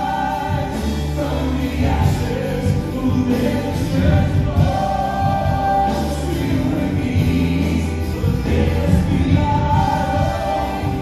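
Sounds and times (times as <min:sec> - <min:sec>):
acoustic guitar: 0:00.0 - 0:11.0
bass: 0:00.0 - 0:11.0
drums: 0:00.0 - 0:11.0
keyboard: 0:00.0 - 0:11.0
people singing together: 0:00.0 - 0:11.0.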